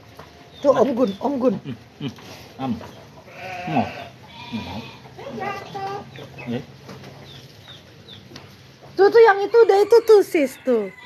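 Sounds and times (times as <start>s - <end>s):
farm animal bleating: 2.2s - 6.6s.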